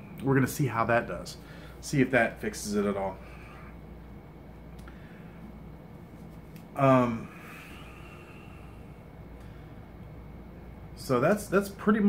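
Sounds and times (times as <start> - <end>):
steady room hum: 0.0 - 12.0.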